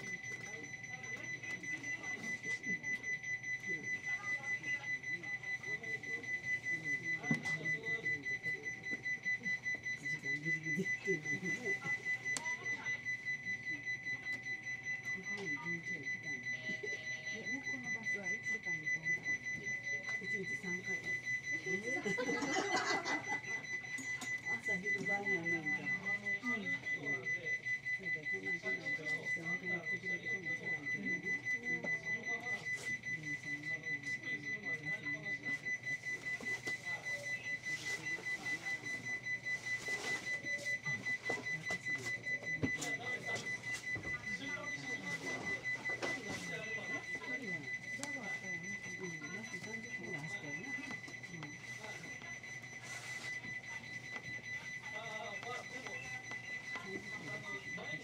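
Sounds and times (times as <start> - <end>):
high electronic beep pulsing: 0.0 - 58.0
muffled voices: 0.0 - 58.0.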